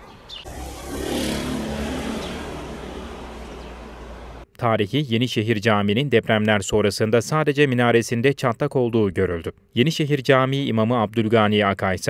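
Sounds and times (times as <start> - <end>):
motor vehicle passing: 0.3 - 4.4.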